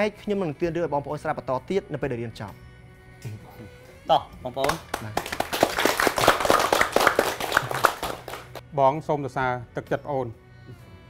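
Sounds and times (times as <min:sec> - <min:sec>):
people clapping: 0:04.6 - 0:08.6.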